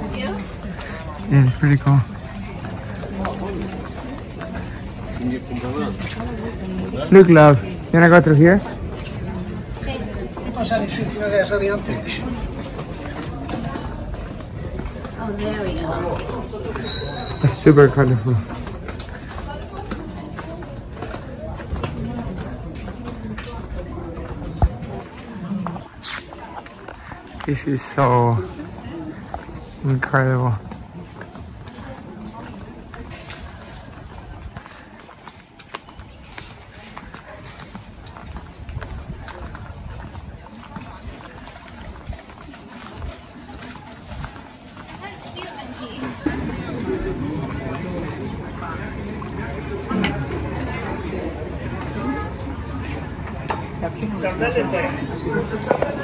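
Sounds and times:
faint voices: 0:00.0 - 0:56.0
footsteps on stone paving: 0:00.0 - 0:56.0
wind rumble on microphone: 0:38.2 - 0:42.4.

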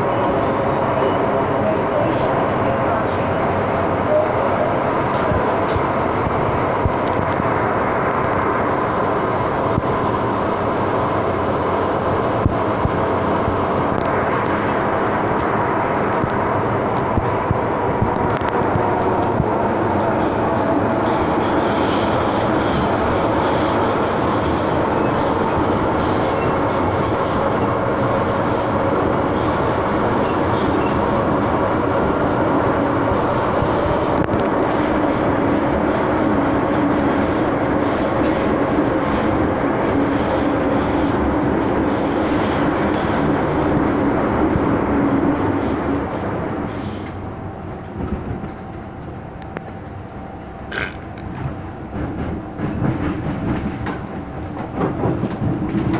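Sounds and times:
rumble of train wheels on rail: 0:00.0 - 0:55.9.

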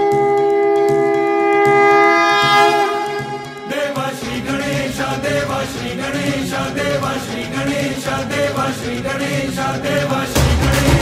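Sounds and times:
backing music: 0:00.0 - 0:11.0
group of voices chanting: 0:03.0 - 0:11.0.

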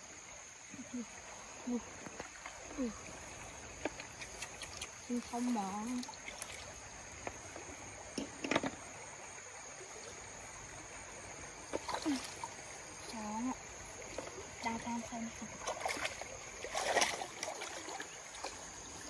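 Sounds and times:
stream water splashing: 0:00.0 - 0:19.0.

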